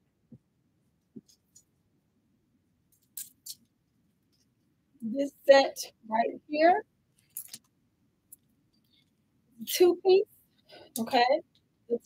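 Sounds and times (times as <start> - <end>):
clothes hangers jingling: 7.2 - 7.7.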